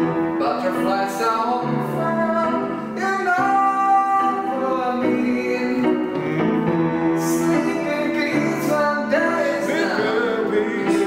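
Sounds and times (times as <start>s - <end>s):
digital piano chords: 0.0s - 11.0s
wordless singing: 0.0s - 11.0s.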